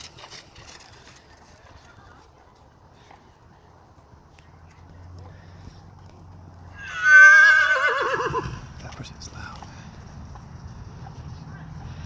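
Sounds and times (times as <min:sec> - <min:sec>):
horse whinnying: 0:06.8 - 0:08.6.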